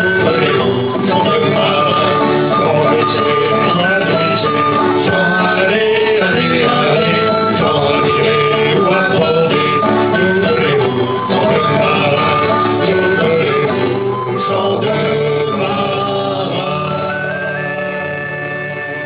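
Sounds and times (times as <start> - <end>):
acoustic guitar strumming: 0.0 - 19.0
wind instrument melody: 0.0 - 19.0.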